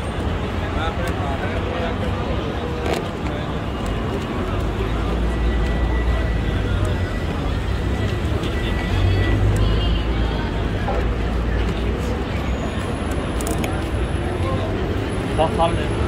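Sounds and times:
passers-by talking: 0.0 - 16.0.

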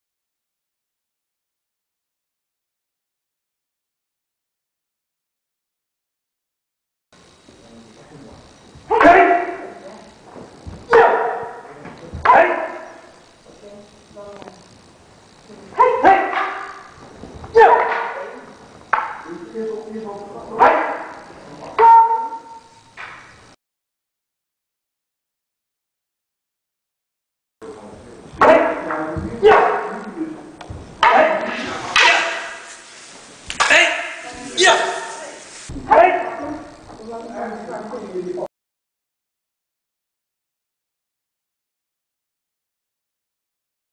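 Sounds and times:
sharp kiai shouts: 8.9 - 9.8, 12.2 - 12.8, 15.8 - 16.9, 17.5 - 18.4, 20.6 - 21.1, 21.8 - 22.5, 28.4 - 28.8, 29.4 - 29.9, 31.0 - 32.7, 33.6 - 36.7
drawn-out vocal call: 15.8 - 18.6, 31.0 - 36.8.

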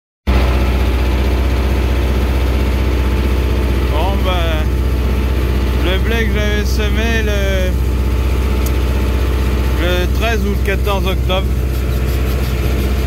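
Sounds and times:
tractor engine droning: 0.3 - 13.0.

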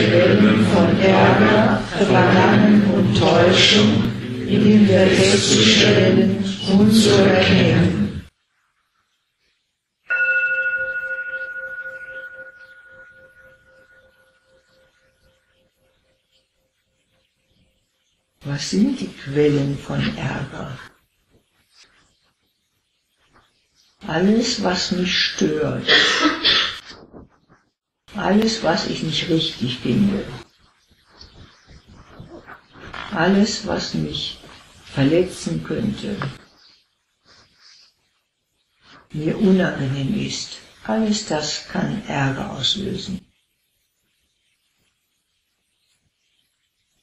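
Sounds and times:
person speaking: 0.0 - 8.3, 18.4 - 20.9, 24.0 - 26.8, 28.1 - 30.4, 32.3 - 36.4, 39.1 - 43.2
singing bowl ringing: 10.1 - 16.6
small indistinct sounds: 20.6 - 24.6, 26.5 - 39.6, 43.2 - 47.0.

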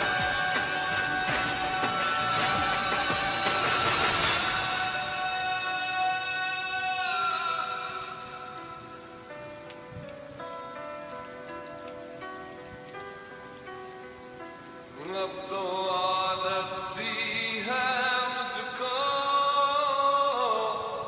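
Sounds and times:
person singing: 0.0 - 9.1, 15.0 - 21.0
rain: 0.0 - 21.0.

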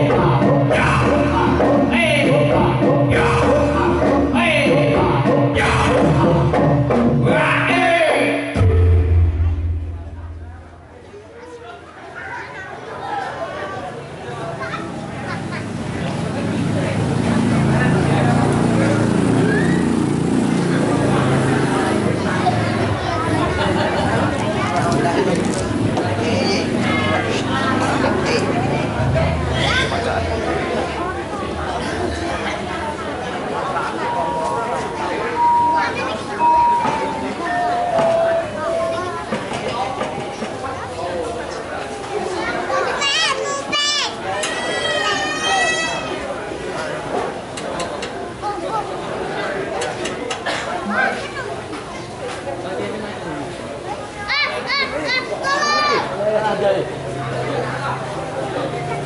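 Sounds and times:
people talking: 0.0 - 6.6, 7.2 - 59.0
low steady hum: 8.6 - 11.0.

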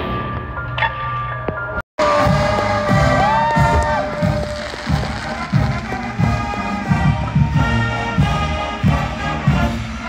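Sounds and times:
bass drum strokes: 2.0 - 9.2
brass holding long notes: 2.0 - 10.0.

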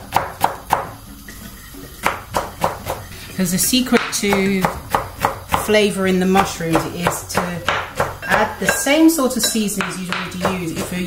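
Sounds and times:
knife chopping on wooden board: 0.0 - 0.9, 2.0 - 3.0, 3.9 - 5.7, 6.4 - 8.8.

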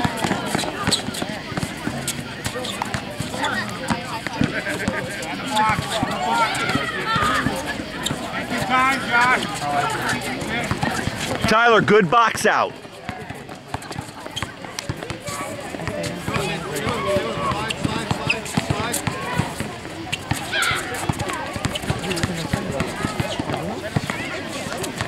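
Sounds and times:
voices in background: 0.0 - 25.0.

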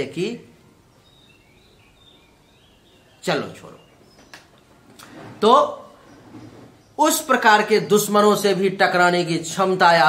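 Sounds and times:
faint room hiss: 0.0 - 10.0
high bird chirps: 0.9 - 4.6.

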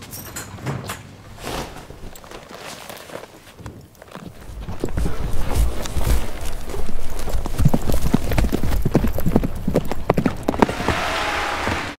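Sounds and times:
horse hoofbeats on sand: 4.0 - 11.9.

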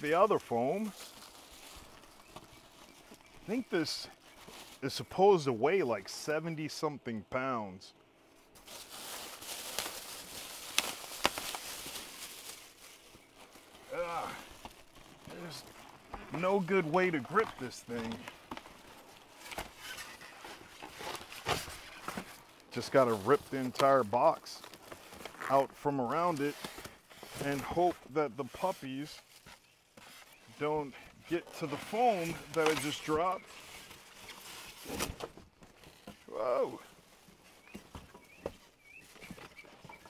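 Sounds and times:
cardboard and foam rustling: 0.0 - 5.1, 8.4 - 40.0.

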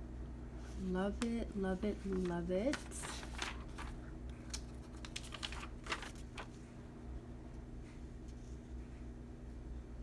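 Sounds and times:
paper rustling and clicking: 2.0 - 6.6.

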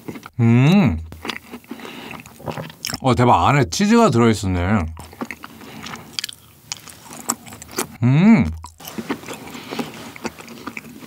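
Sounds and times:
close chewing with small crunches: 0.0 - 0.4, 1.0 - 3.1, 4.9 - 11.0.

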